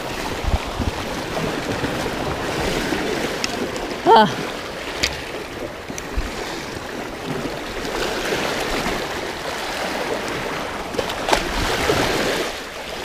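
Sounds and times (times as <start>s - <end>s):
surf washing through rocks: 0.0s - 13.0s.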